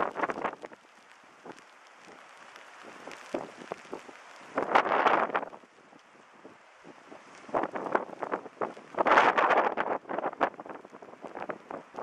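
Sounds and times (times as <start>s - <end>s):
wind buffeting microphone: 0.0s - 0.8s, 1.4s - 12.0s.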